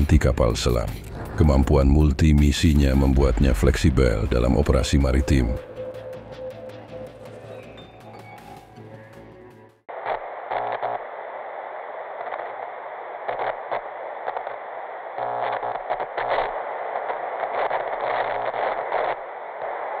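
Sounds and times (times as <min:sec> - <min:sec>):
tv static hiss: 0:00.0 - 0:05.6, 0:09.9 - 0:20.0.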